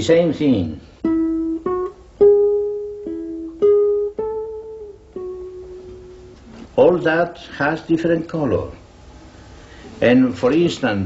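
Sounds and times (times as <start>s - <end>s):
classical guitar plucked notes: 1.0s - 6.7s.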